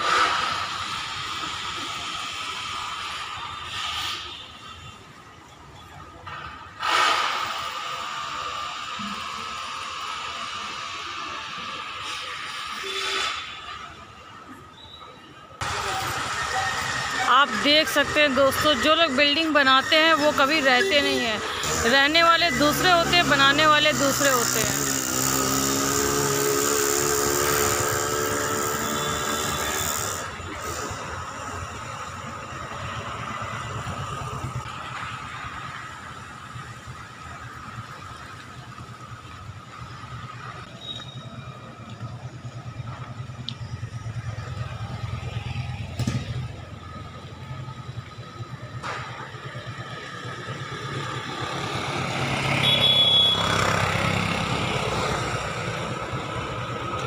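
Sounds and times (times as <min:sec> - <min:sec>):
vehicle engine: 0:00.0 - 0:14.6, 0:15.6 - 0:57.0
traffic rumble: 0:00.0 - 0:57.0.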